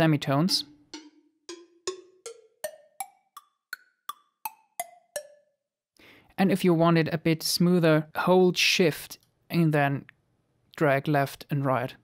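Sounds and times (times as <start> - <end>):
cowbell hits: 0.5 - 5.4.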